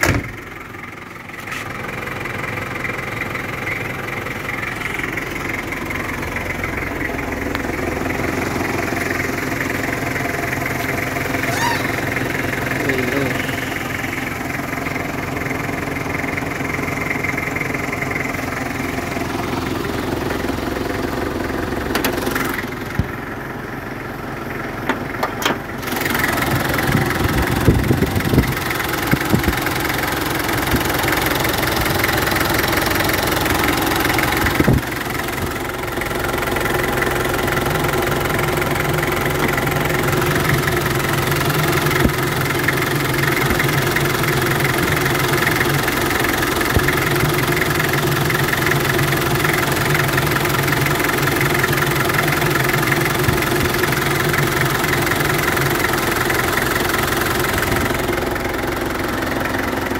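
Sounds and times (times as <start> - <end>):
diesel engine idling: 0.0 - 59.9.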